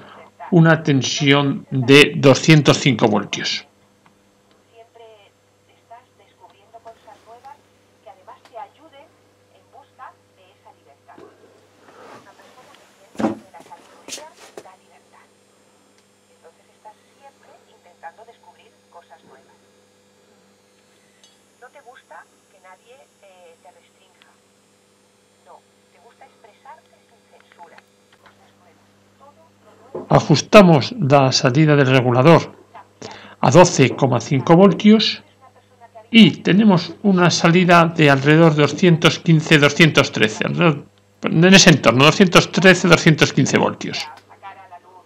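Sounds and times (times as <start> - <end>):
radio talk through loudspeaker: 0.0 - 3.7, 4.8 - 15.3, 16.3 - 19.6, 21.6 - 24.4, 25.5 - 45.0
steady low hum: 0.0 - 45.0.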